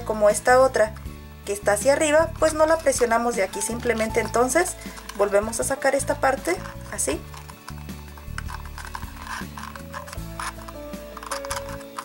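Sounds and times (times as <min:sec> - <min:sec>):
background pop music: 0:00.0 - 0:12.0
paper cup crinkling: 0:02.6 - 0:12.0.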